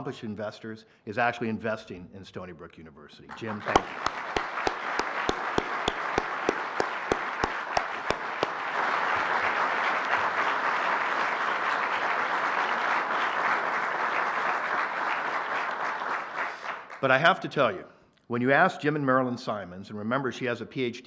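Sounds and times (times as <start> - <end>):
audience applauding: 3.3 - 17.0
close hand claps: 3.3 - 17.1.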